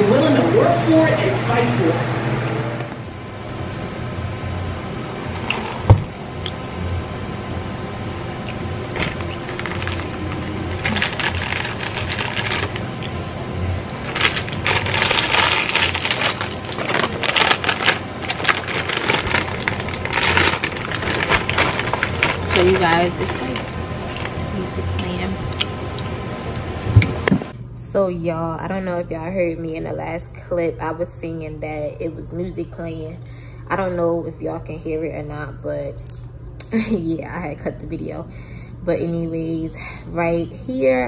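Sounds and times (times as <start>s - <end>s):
plastic snack bag crinkling: 8.4s - 13.2s, 13.9s - 24.4s.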